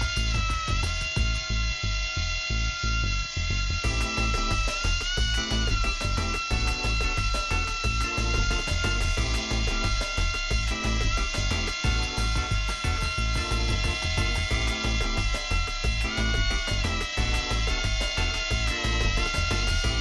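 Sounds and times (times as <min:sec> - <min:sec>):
background music with beat: 0:00.0 - 0:02.0, 0:03.8 - 0:20.0
whine of tiny drone motor: 0:00.0 - 0:20.0.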